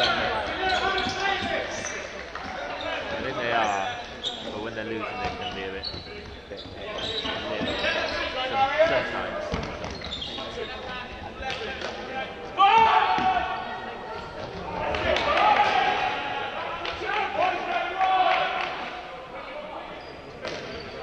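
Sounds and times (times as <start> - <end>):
shoe squeaks on wooden floor: 0.0 - 11.2
players shouting: 11.4 - 19.9.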